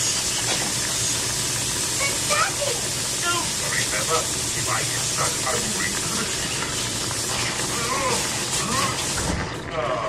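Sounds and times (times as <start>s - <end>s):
food sizzling in a frying pan: 0.0s - 9.5s.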